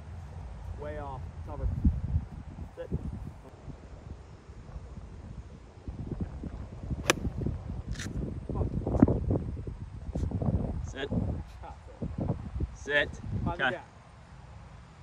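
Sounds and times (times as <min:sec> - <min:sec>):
wind rumble on microphone: 0:00.0 - 0:13.8
golf club striking ball: 0:07.0 - 0:07.4.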